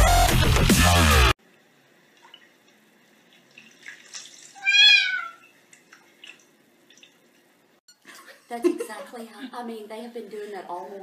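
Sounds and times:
electronic dance music: 0.0 - 1.3
cat meowing: 4.6 - 5.4.

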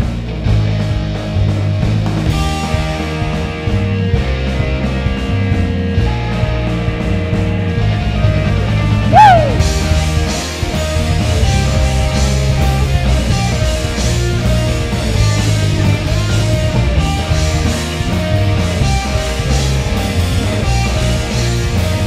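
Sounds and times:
pop punk band playing live: 0.0 - 22.0.

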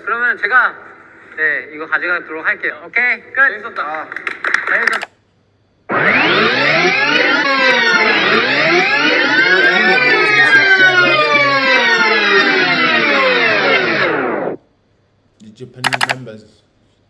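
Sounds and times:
tape rewind whine: 5.8 - 14.8.

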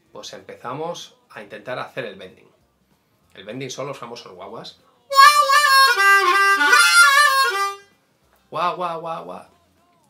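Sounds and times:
harmonica bending notes: 5.1 - 7.9.

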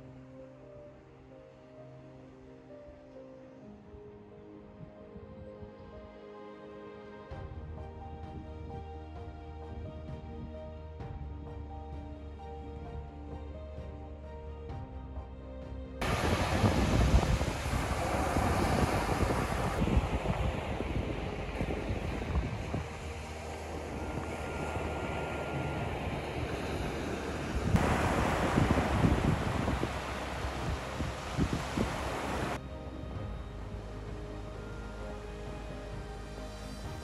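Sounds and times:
background music: 0.0 - 37.0
surf washing on the shore: 16.0 - 32.6
wind buffeting the microphone: 16.0 - 32.6.

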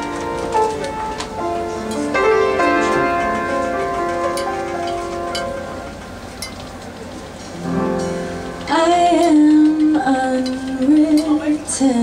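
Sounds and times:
piano chords: 0.0 - 12.0.

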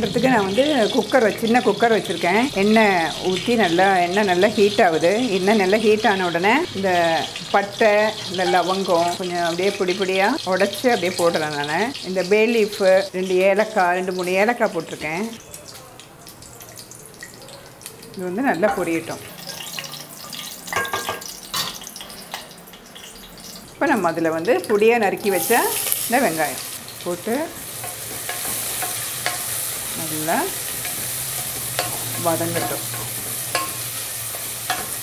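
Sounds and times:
woman talking: 0.0 - 15.4, 18.2 - 19.3, 23.8 - 27.6, 29.9 - 30.6, 32.2 - 32.9
spices frying in oil: 0.0 - 35.0.

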